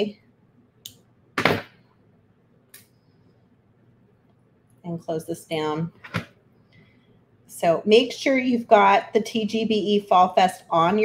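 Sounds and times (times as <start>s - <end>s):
wire cutters knocking on table: 1.4s - 1.8s.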